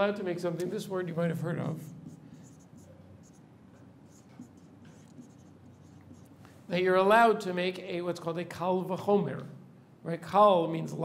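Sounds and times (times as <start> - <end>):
marker writing on whiteboard: 1.8 - 6.5.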